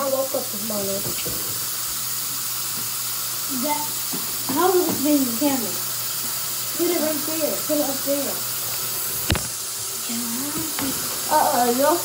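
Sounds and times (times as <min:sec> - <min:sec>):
water running from a tap: 0:00.0 - 0:12.0.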